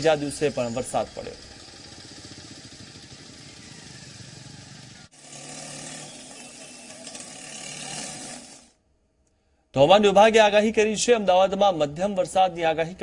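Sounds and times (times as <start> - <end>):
street noise: 0.0 - 8.6
scooters and vehicles running: 0.0 - 8.7.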